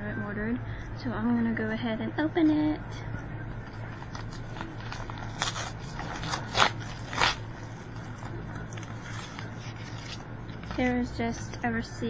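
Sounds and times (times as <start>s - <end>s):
paper crinkling: 3.8s - 11.6s
paper envelope tearing: 4.0s - 10.8s.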